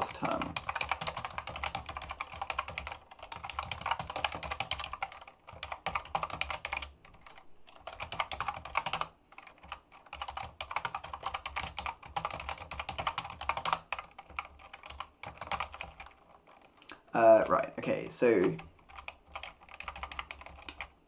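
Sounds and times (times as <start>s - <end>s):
keyboard typing: 0.0s - 17.6s, 18.3s - 21.0s.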